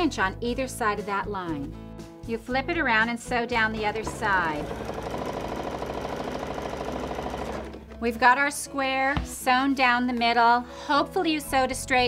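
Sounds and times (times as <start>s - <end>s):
sewing machine stitching: 3.7s - 8.0s.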